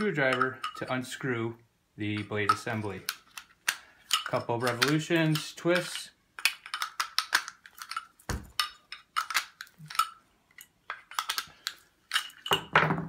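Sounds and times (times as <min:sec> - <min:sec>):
metal parts clinking and clicking: 0:02.1 - 0:12.8.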